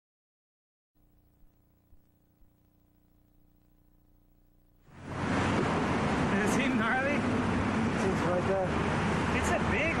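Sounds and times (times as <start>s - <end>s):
street noise rumble: 4.8s - 10.0s.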